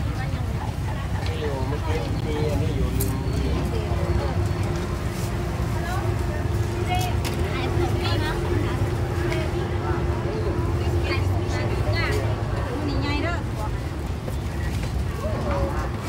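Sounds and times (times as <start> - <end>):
constant hum: 0.0 - 16.0
people talking: 0.0 - 16.0.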